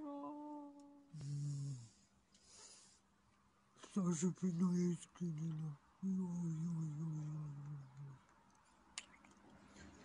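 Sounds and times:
woman singing a note: 0.0s - 1.6s
short breathy exhale: 1.8s - 3.0s.

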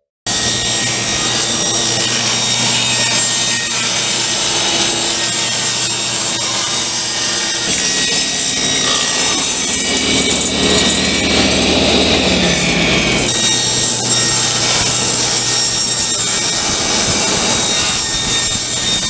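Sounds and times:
table saw cutting plywood: 0.0s - 19.0s.

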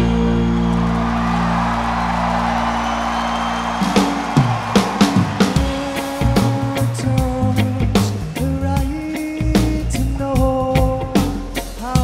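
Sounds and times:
bass line: 0.0s - 12.0s
drum hits: 3.8s - 7.4s.

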